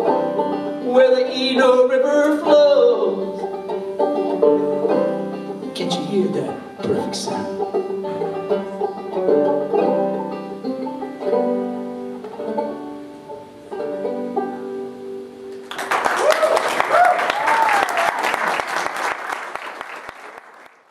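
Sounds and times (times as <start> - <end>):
banjo playing: 0.0 - 15.8
audience applause: 15.6 - 20.9.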